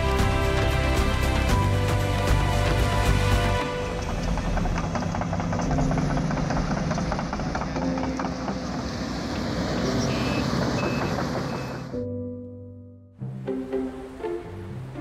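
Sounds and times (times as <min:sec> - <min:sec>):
construction machinery engine rumble: 0:00.0 - 0:12.0
reversing alarm beeping: 0:10.0 - 0:11.9.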